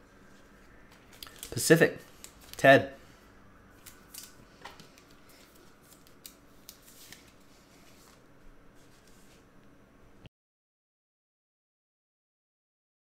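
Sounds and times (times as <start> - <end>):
trading cards clicking and rustling: 0.9 - 2.8, 3.8 - 8.2.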